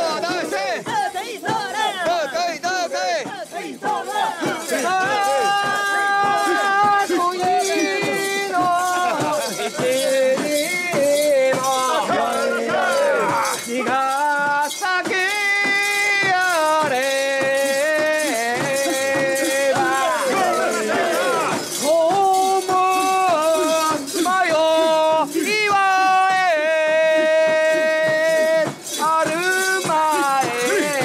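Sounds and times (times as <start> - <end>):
metallic jangling and rattling: 0.0 - 31.0.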